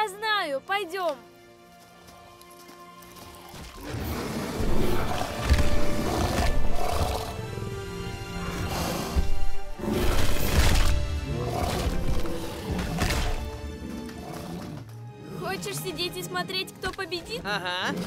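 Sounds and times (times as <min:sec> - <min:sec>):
dramatic background music: 0:00.0 - 0:18.0
dinosaur roars: 0:03.8 - 0:15.6.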